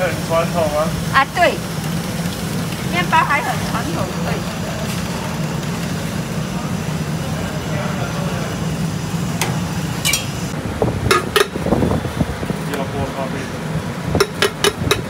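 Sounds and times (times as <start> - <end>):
low hum of coffee stall: 0.0 - 15.0
spoon clinking on tins: 10.1 - 10.3.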